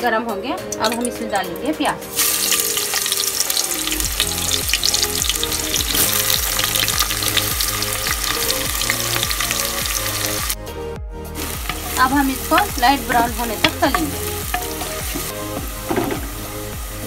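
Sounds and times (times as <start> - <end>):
onions sizzling in hot oil: 2.1 - 10.6, 11.4 - 17.0.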